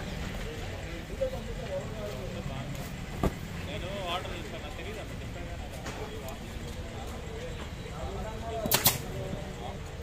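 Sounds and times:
low traffic rumble: 0:00.0 - 0:10.0
people's voices: 0:00.0 - 0:10.0.

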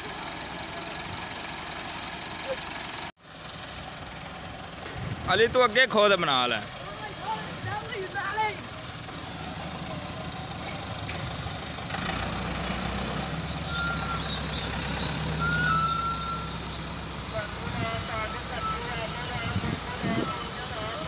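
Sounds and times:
tractor diesel engine revving: 0:00.0 - 0:21.0
voices of onlookers: 0:17.2 - 0:21.0.

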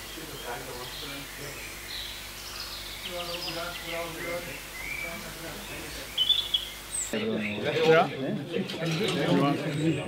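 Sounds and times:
people talking: 0:00.0 - 0:01.6, 0:03.1 - 0:06.2, 0:07.2 - 0:10.0
background hiss: 0:00.0 - 0:07.3
birds chirping: 0:00.0 - 0:10.0.

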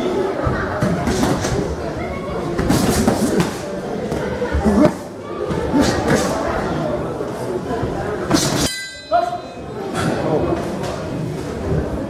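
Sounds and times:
crowd noise and voices: 0:00.0 - 0:12.0.

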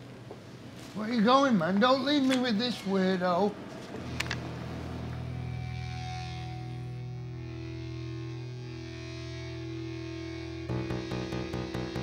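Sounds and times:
droning electric guitar chord: 0:04.0 - 0:12.0.

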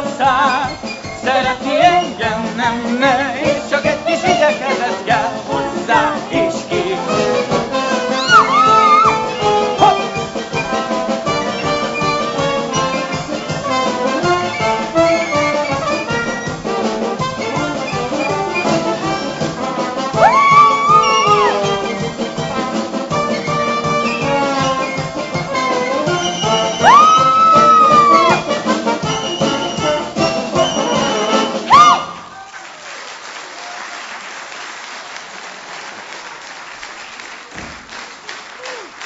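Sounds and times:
jazzy orchestra with brass: 0:00.0 - 0:32.2
swooping high notes: 0:08.1 - 0:10.7, 0:20.2 - 0:22.1, 0:23.4 - 0:32.1.

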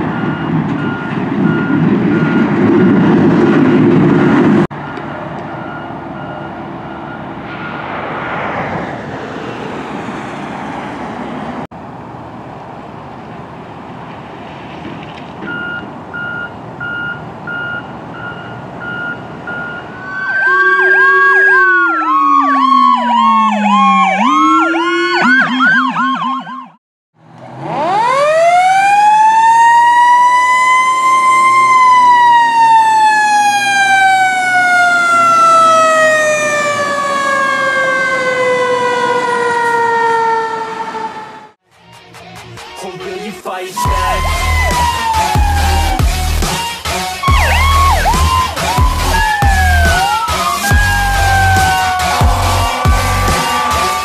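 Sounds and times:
electronic sirens yelping and wailing: 0:00.0 - 0:03.2, 0:18.2 - 0:26.8, 0:27.6 - 0:41.6, 0:43.8 - 0:54.0
road traffic: 0:00.0 - 0:54.0
pulsed beeping: 0:43.8 - 0:46.3.

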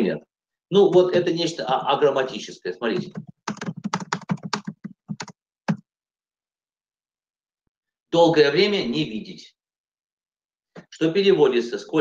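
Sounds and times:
typing on computer keyboard: 0:03.0 - 0:05.8.

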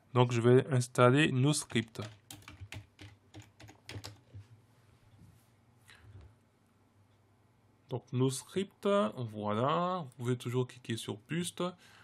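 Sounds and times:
computer keyboard keystrokes: 0:01.6 - 0:04.4.

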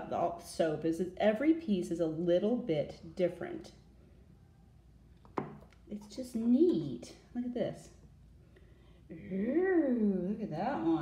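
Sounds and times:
hard object knocking on surface: 0:05.3 - 0:05.7.

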